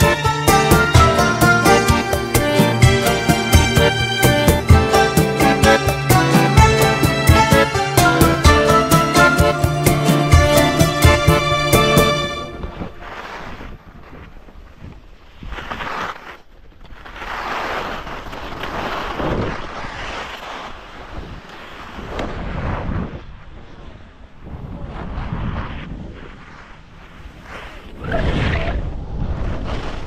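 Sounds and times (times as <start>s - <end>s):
skis scraping over snow: 11.8s - 28.5s, 29.3s - 30.0s
wind buffeting microphone: 21.0s - 30.0s.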